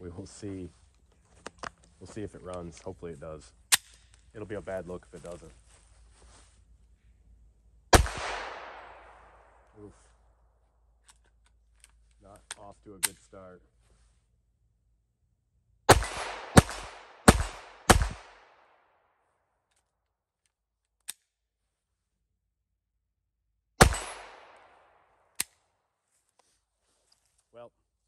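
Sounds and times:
pistol shots: 7.9s - 9.6s, 15.9s - 18.7s, 23.8s - 25.0s.

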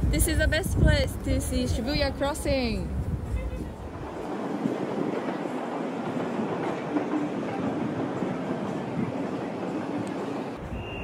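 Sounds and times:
distant train on tracks: 0.0s - 11.0s.

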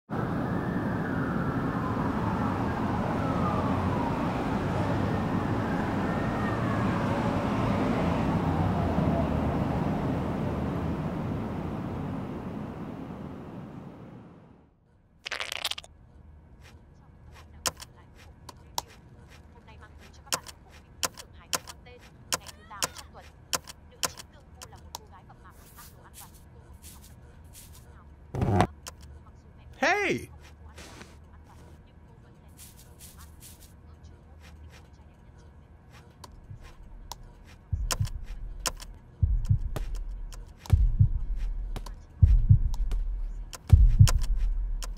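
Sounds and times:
deep heavy thumps: 37.8s - 38.3s, 39.2s - 39.9s, 40.8s - 44.8s.

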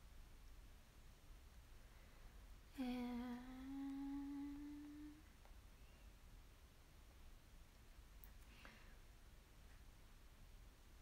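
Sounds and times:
woman humming long note: 2.8s - 5.3s.

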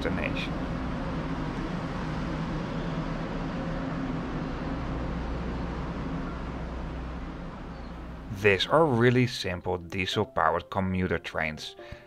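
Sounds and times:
train diesel engines droning: 0.0s - 9.5s.

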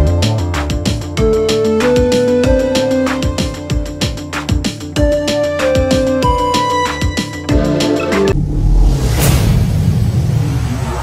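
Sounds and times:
swoosh: 8.3s - 11.0s.

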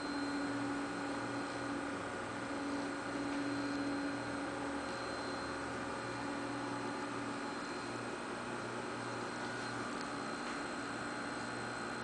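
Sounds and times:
robot arm motors humming and whining: 0.0s - 12.0s.

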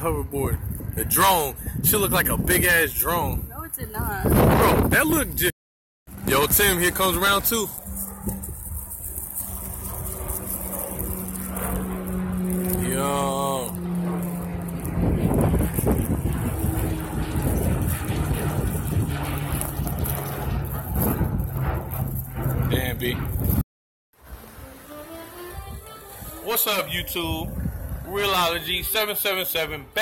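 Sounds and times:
wind rumbling on microphone: 0.0s - 5.5s, 6.1s - 23.6s, 25.5s - 30.0s
small aircraft engine drone: 6.1s - 23.6s, 24.2s - 30.0s.

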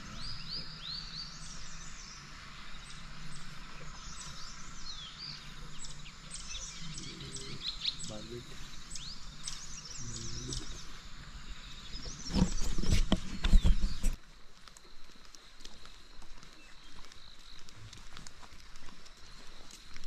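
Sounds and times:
wild birds calling: 0.0s - 14.2s.

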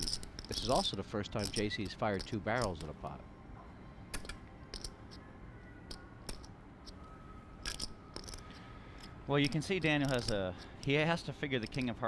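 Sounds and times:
poker chips clicking: 0.0s - 2.9s, 4.1s - 5.0s, 6.3s - 6.5s, 7.6s - 11.0s, 11.6s - 12.0s.

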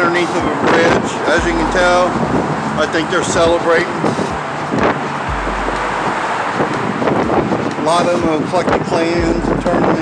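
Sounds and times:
traffic on bridge overhead: 0.0s - 10.0s
wind buffeting microphone: 0.0s - 10.0s
deep low hum: 1.4s - 7.5s, 9.2s - 9.8s.

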